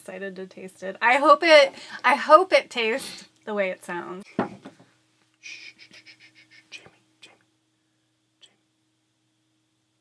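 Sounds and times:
steady low hum: 0:00.0 - 0:10.0
faint whispering: 0:06.7 - 0:07.4, 0:08.4 - 0:08.6.

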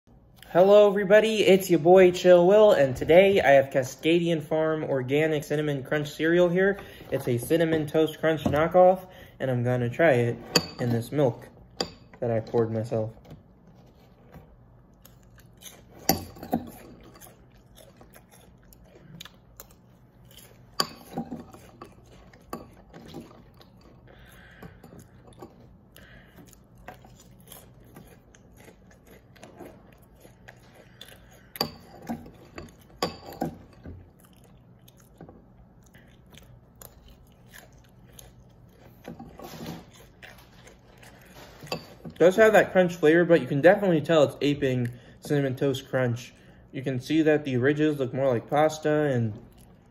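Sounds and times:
chewing crunchy cereal: 0:13.8 - 0:43.0, 0:49.4 - 0:49.9.

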